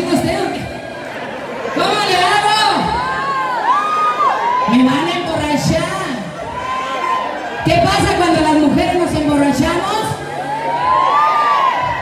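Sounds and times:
crowd shouting and whooping: 0.6 - 5.3, 6.2 - 8.3, 10.2 - 12.0.

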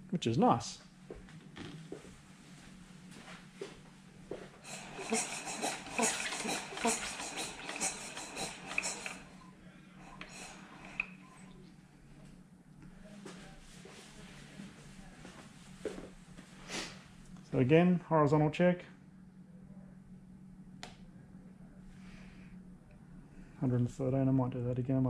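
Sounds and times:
tools clicking and rustling: 4.7 - 9.4.

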